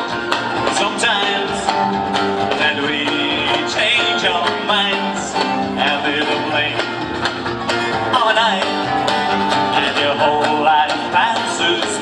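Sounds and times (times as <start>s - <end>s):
acoustic guitar strummed: 0.0s - 12.0s
country-rock band music: 0.0s - 12.0s
drum kit: 0.0s - 12.0s.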